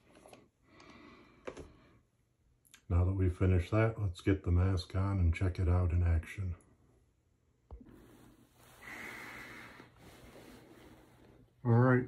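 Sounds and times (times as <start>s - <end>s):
rubber mask handling: 7.8s - 11.7s.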